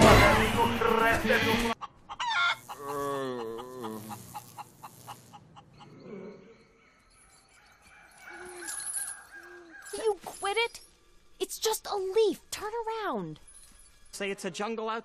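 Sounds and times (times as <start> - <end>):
high insect buzz: 2.4 - 5.5.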